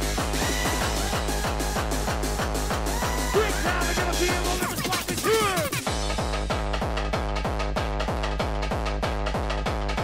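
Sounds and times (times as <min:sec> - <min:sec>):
distorted kick drum pounding: 0:00.0 - 0:10.0.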